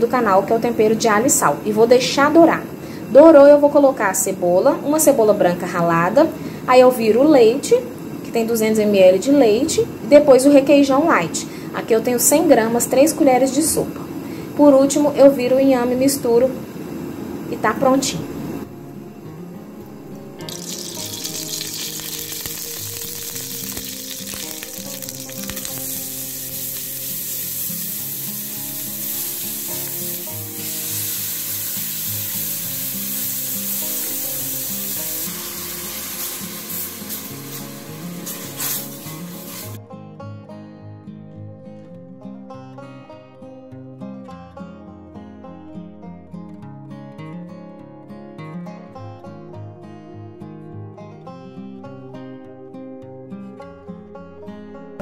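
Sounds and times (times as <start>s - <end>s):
background music: 17.6s - 55.0s
onion sizzling in a pan: 20.4s - 39.8s.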